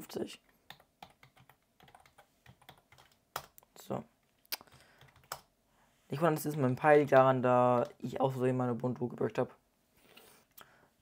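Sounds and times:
computer keyboard typing: 0:00.7 - 0:03.6, 0:04.6 - 0:05.5.

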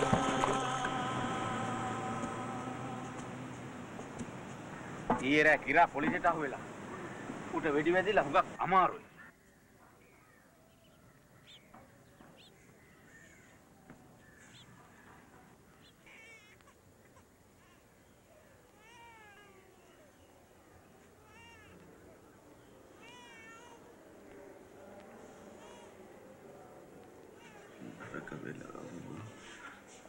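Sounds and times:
high-pitched animal cries: 0:16.0 - 0:16.6.

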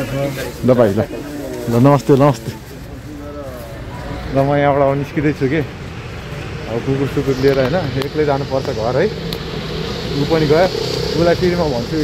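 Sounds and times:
man speaking: 0:00.0 - 0:05.8
faint street background noise: 0:00.0 - 0:12.0.

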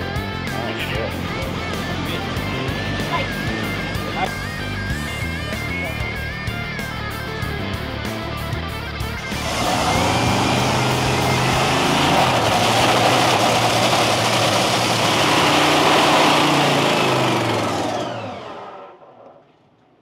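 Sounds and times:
dragster engine roaring: 0:00.0 - 0:19.8.

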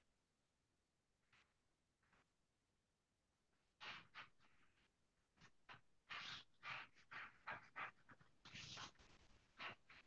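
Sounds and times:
pen scratching on paper: 0:06.0 - 0:10.0.

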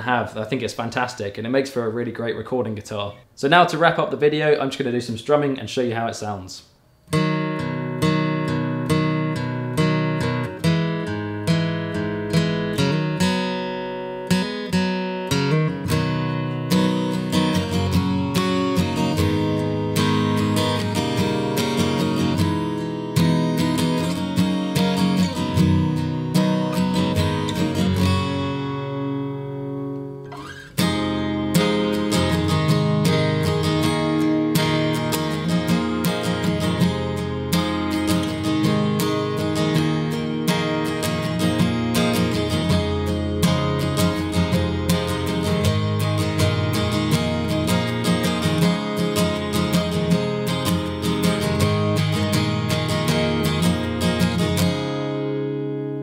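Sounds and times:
acoustic guitar strumming chords: 0:07.0 - 0:56.0.

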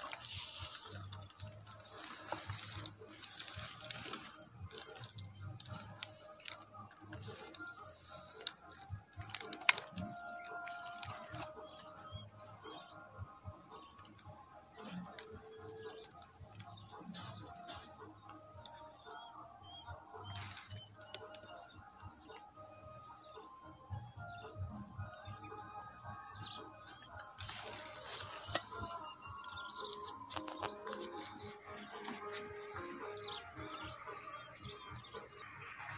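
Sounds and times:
birds chirping: 0:00.0 - 0:35.9.

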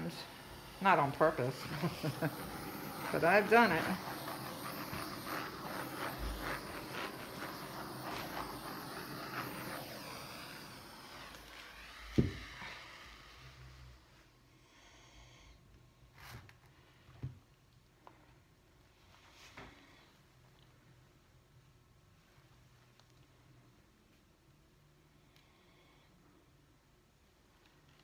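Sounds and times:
gas torch hissing: 0:00.0 - 0:15.5
torch knocking on table: 0:12.1 - 0:12.5.

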